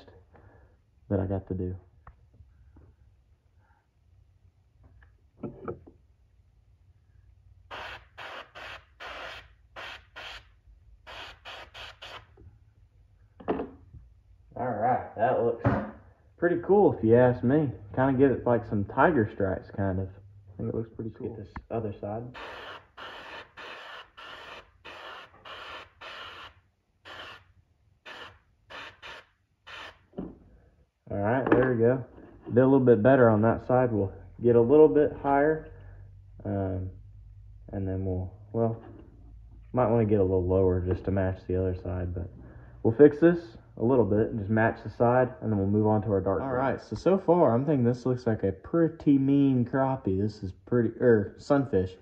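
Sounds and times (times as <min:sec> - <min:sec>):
airbrush spraying in hissing bursts: 0:07.7 - 0:12.3, 0:22.4 - 0:30.0.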